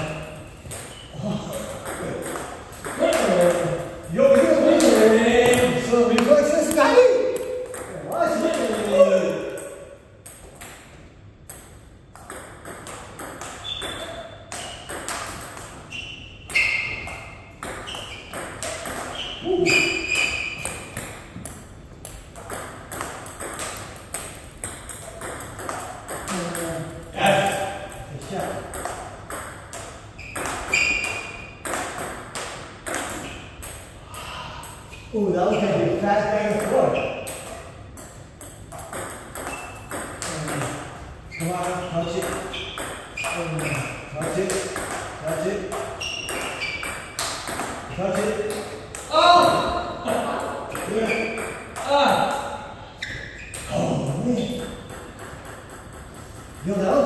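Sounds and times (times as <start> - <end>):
ping-pong ball clicking: 1.8 - 15.8, 16.5 - 33.9, 36.5 - 40.9, 41.6 - 49.1, 54.5 - 56.9
men's voices: 3.0 - 9.6.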